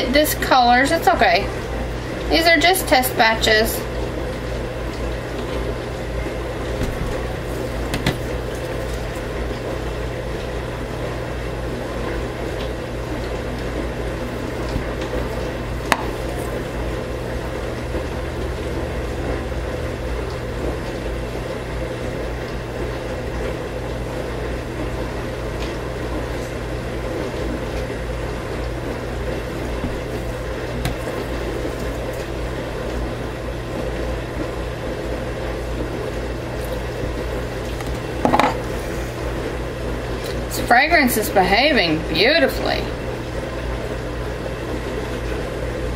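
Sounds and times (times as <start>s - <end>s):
steady background hum: 0.0s - 45.9s.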